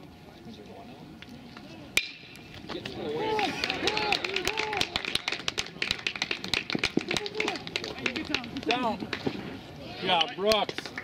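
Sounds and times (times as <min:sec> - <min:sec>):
bat hitting ball: 0:02.0 - 0:02.4
scattered clapping: 0:02.8 - 0:09.3, 0:10.2 - 0:11.0
people shouting: 0:03.0 - 0:05.0.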